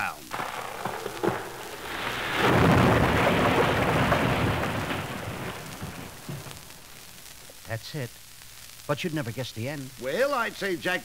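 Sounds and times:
rumbling crash: 0.3s - 7.4s.

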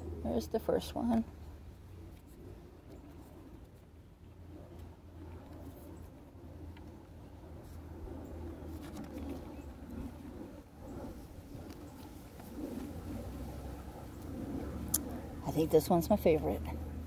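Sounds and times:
low outdoor hum: 0.0s - 17.0s.

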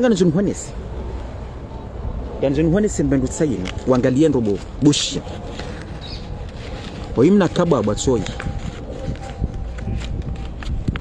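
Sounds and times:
man talking: 0.0s - 0.8s, 2.4s - 5.4s, 7.0s - 8.5s
handling clicks and rustles: 2.8s - 11.0s.

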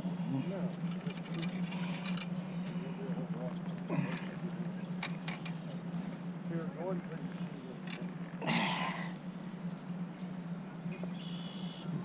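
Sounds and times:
steady low hum: 0.0s - 12.0s
faint indistinct voices: 0.2s - 9.3s.

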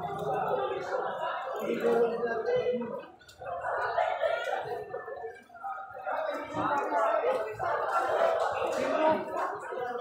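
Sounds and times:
muffled indistinct talking: 0.0s - 10.0s.

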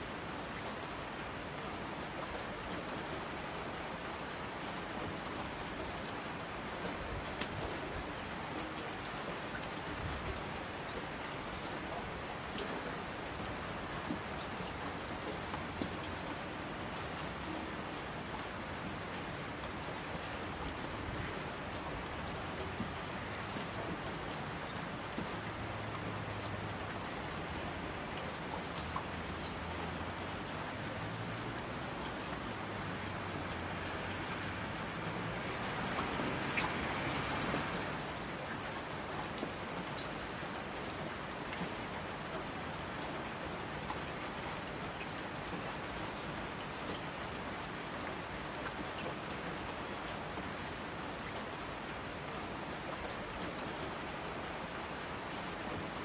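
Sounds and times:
steady rain falling: 0.0s - 56.0s
close raindrop ticks: 0.3s - 56.0s.

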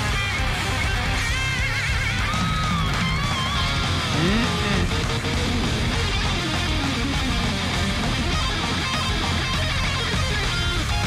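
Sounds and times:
heavy metal song: 0.0s - 11.0s.

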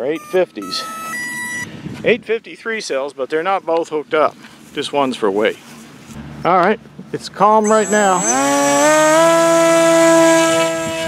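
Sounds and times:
electric motor propeller whine: 7.6s - 11.0s.

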